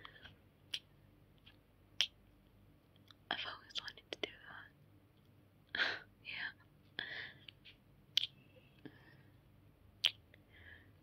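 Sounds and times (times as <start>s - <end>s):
soft mouth clicks: 0.7s - 2.2s, 7.4s - 8.8s, 10.0s - 10.4s
woman whispering: 3.3s - 4.8s, 6.2s - 6.7s.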